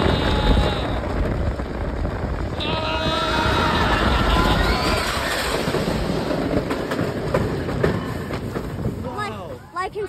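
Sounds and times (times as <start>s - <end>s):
roller coaster rumbling on track: 0.0s - 10.0s.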